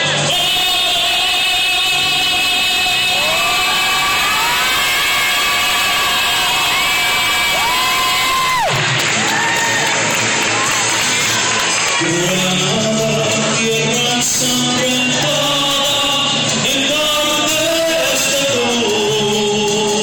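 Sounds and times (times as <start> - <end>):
man singing through microphone: 0.0 - 7.5, 12.0 - 20.0
backing track music: 0.0 - 20.0
audience cheering and whooping: 2.9 - 12.3.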